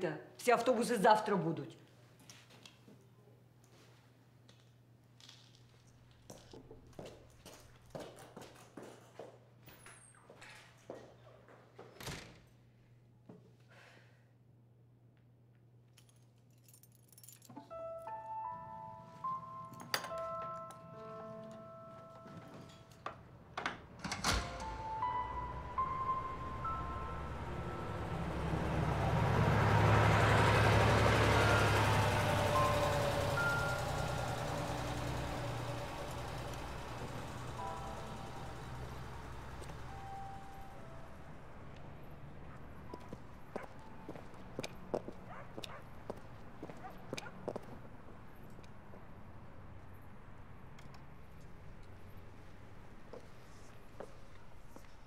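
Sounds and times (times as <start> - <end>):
vehicle rumble: 24.1 - 55.0.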